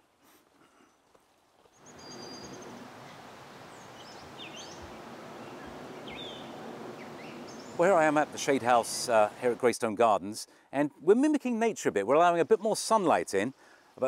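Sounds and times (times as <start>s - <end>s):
steady background hiss: 0.0s - 14.0s
birds chirping: 1.7s - 9.7s.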